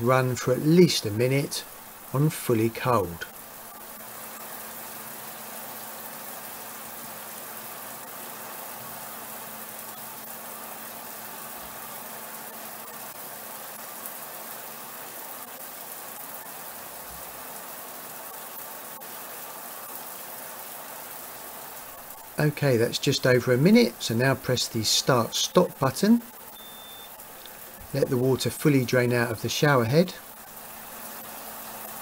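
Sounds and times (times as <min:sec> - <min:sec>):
faint steady hum: 0:00.0 - 0:32.0
shower water spraying: 0:01.1 - 0:32.0.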